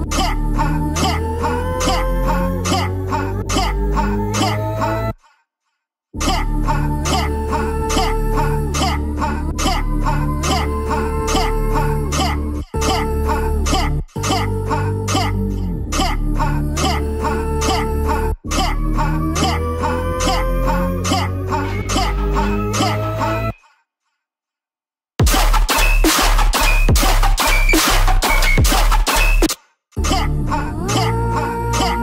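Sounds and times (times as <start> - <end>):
dubstep track with heavy sub-bass: 25.2 - 32.0.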